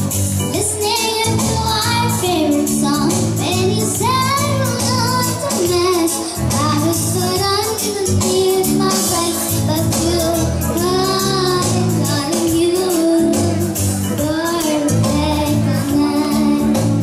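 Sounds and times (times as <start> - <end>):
electronic keyboard with steady beat: 0.0 - 17.0
girl singing into a microphone: 0.4 - 17.0.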